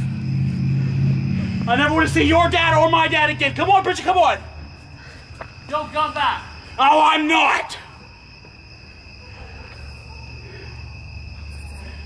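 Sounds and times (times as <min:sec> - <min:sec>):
low rumble: 0:00.0 - 0:03.7
crickets chirping: 0:00.0 - 0:12.0.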